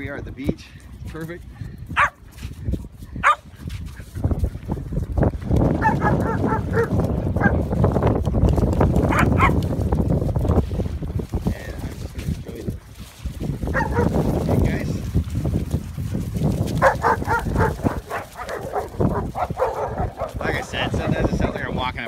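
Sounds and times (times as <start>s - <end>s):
dogs barking and yipping: 1.9s - 2.3s, 3.2s - 4.1s, 5.8s - 7.7s, 9.0s - 9.6s, 13.7s - 14.3s, 16.7s - 21.3s.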